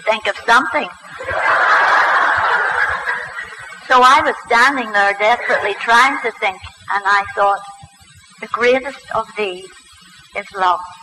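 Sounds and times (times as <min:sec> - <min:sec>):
audience laughing: 0:01.2 - 0:03.8, 0:05.2 - 0:06.0.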